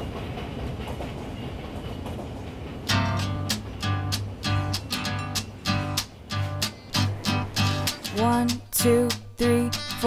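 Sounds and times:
train rumbling on rails: 0:00.0 - 0:09.6.

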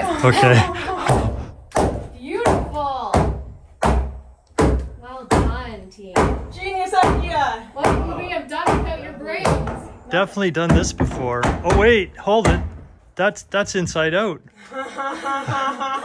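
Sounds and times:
people laughing: 0:00.0 - 0:01.5, 0:14.6 - 0:16.0
mallet knocking wooden board: 0:10.7 - 0:12.9.

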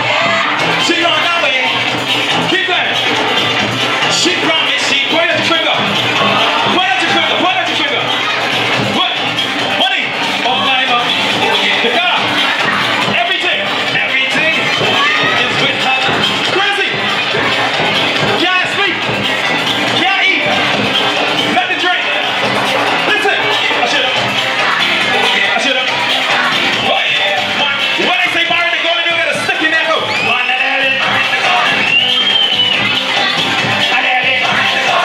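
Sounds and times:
backing track through speaker: 0:00.0 - 0:35.0.

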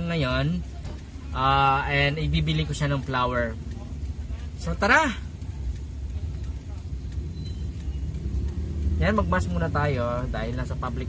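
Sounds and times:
vehicle rumble inside cabin: 0:00.0 - 0:11.0.

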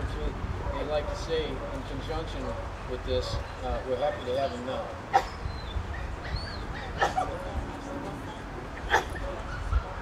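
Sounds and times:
dog barking: 0:00.6 - 0:04.2.

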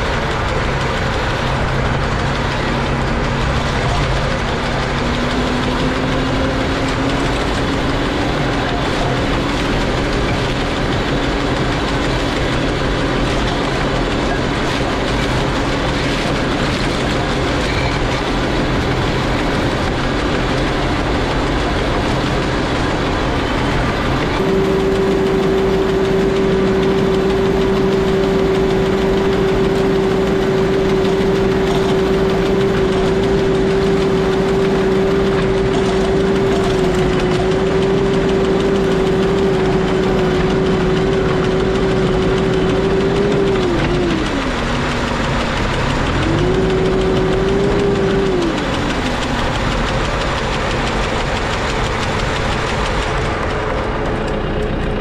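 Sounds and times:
hedge trimmer whine: 0:00.0 - 0:55.0
tractor engine running: 0:00.0 - 0:55.0.

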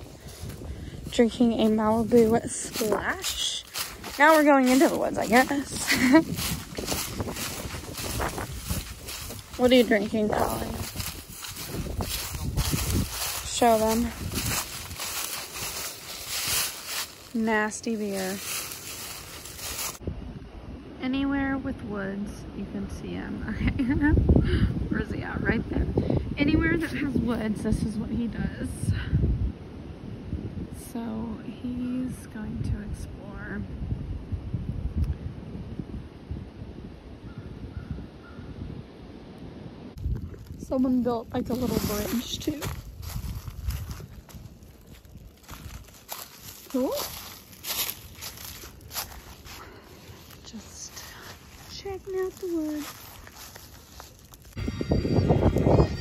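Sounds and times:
footsteps crunching dry leaves: 0:00.0 - 0:20.0, 0:40.0 - 0:56.0
wind buffeting microphone: 0:00.0 - 0:56.0.

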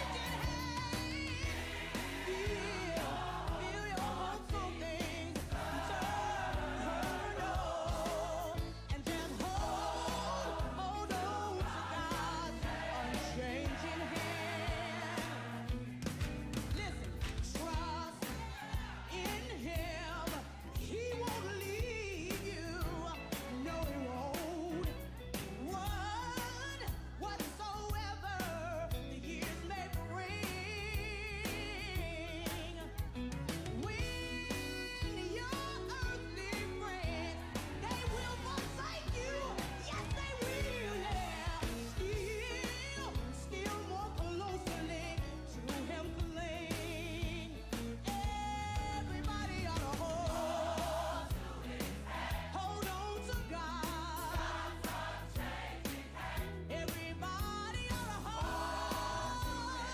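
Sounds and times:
drum beat: 0:00.0 - 0:19.0, 0:49.2 - 0:53.0
bass line: 0:00.0 - 0:59.9.

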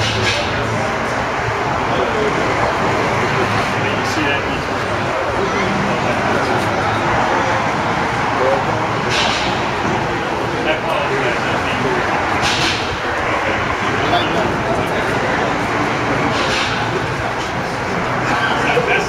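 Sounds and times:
indistinct voices: 0:00.0 - 0:19.0
passing traffic: 0:00.0 - 0:19.0.

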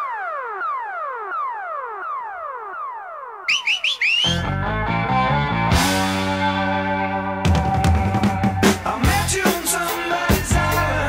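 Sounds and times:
synthesized tone falling in pitch: 0:00.0 - 0:05.6
short rising chirps: 0:03.5 - 0:04.4
rock music: 0:04.2 - 0:11.0.

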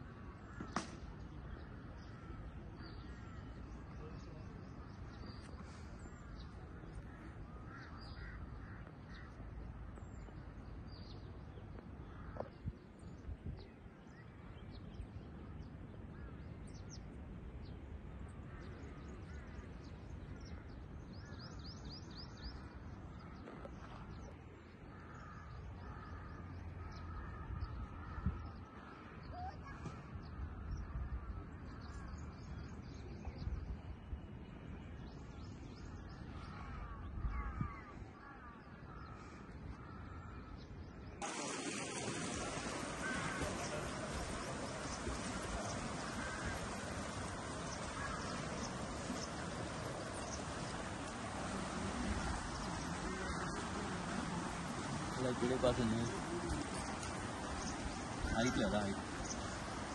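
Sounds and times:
birds chirping: 0:00.0 - 0:59.9
crow-like caws: 0:07.0 - 0:09.4, 0:24.9 - 0:31.4, 0:36.3 - 0:40.6, 0:42.6 - 0:51.9.

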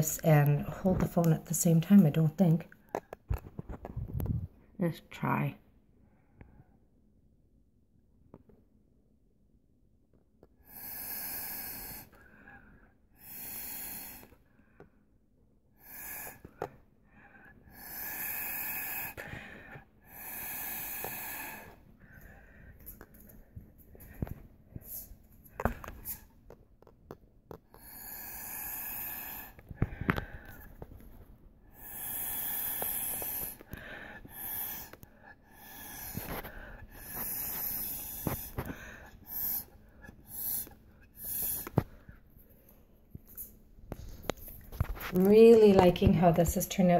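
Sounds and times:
breath puffs through a straw: 0:10.6 - 0:14.4, 0:15.7 - 0:23.1, 0:27.7 - 0:42.2.

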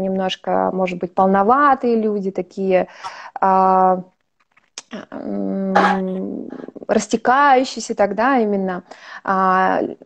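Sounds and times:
woman's held hesitation sound: 0:05.7 - 0:06.7.

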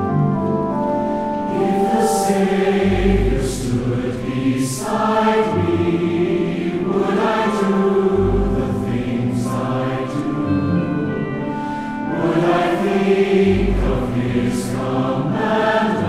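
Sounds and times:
pipe organ: 0:00.0 - 0:16.0
choir singing a hymn: 0:01.1 - 0:16.0.

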